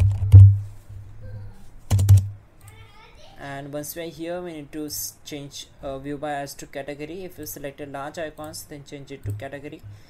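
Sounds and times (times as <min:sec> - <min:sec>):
keyboard key presses: 0:01.9 - 0:02.3.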